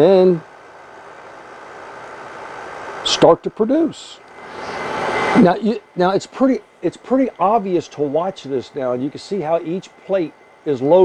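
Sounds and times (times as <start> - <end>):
water chiller whirring: 0.0 - 11.0
faint steady tone: 3.0 - 11.0.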